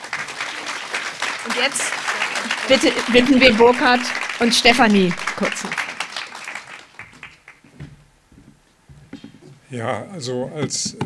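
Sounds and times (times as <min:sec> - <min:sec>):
audience applause: 0:00.0 - 0:07.7.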